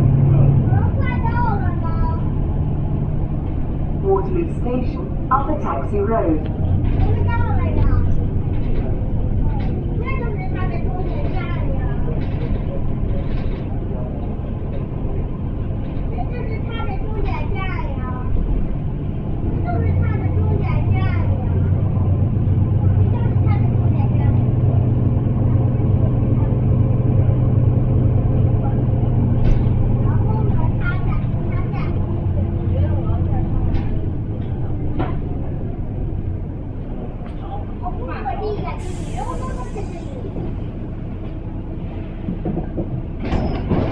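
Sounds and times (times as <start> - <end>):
bus diesel engine droning: 0.0 - 43.9.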